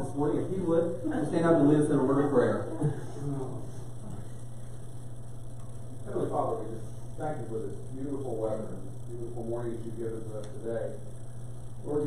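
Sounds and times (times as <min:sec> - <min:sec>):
low mains hum: 0:00.0 - 0:12.0.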